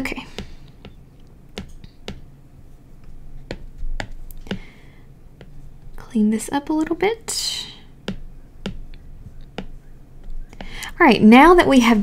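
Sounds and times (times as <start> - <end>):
stylus tapping on glass screen: 1.6 - 2.3.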